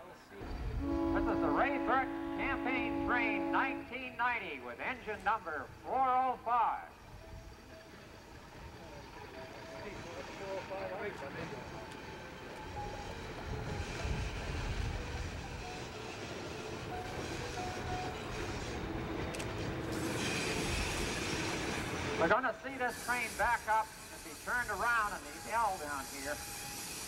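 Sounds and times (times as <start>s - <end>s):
diesel locomotive approaching: 0.0s - 27.0s.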